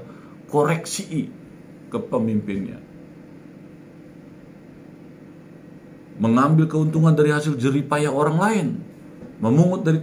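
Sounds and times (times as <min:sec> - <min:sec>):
low hum with faint hiss: 0:00.0 - 0:10.0.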